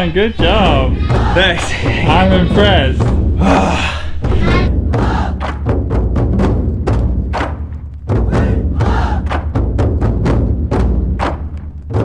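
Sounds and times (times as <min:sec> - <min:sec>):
deep bass: 0:00.0 - 0:12.0
heavy driving drum beat: 0:00.0 - 0:12.0.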